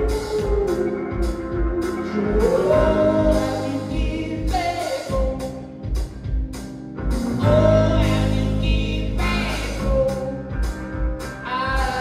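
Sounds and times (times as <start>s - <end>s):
male singer: 0.0s - 5.7s, 7.4s - 10.7s, 11.4s - 12.0s
bass guitar: 0.0s - 12.0s
electric guitar: 0.0s - 12.0s.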